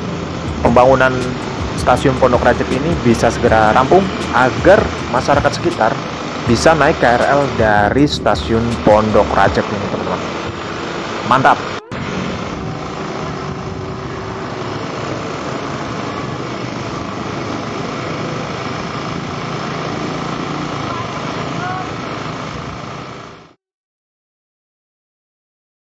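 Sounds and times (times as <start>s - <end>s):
excavator diesel engine running: 0.0s - 23.6s
outdoor noise: 0.0s - 23.6s.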